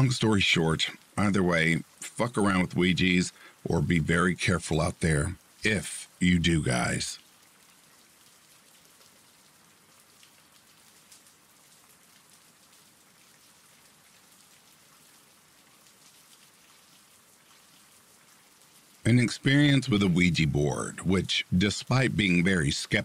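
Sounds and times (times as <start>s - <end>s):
faint steady rain: 0.0s - 23.0s
patter of raindrops: 0.0s - 23.0s.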